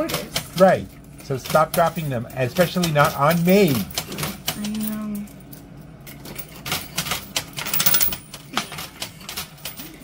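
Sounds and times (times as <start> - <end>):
coins clicking and clattering: 1.3 - 10.0.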